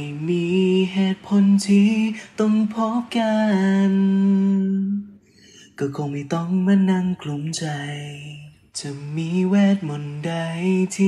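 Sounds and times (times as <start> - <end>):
man singing: 0.0 - 11.0.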